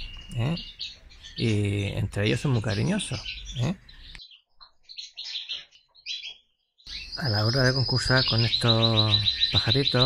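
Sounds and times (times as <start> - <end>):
finches calling: 0.0 - 10.0.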